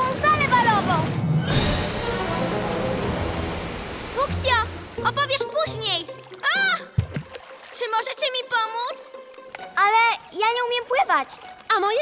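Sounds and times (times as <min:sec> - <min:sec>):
cartoon flood water rushing: 0:00.0 - 0:12.0.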